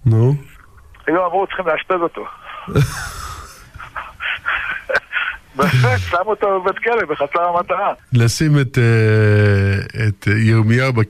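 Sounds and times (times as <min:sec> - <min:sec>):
men laughing breathily: 0:02.5 - 0:06.2.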